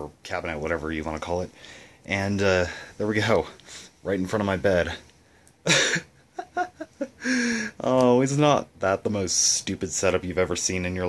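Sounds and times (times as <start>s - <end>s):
man laughing: 5.6s - 7.8s.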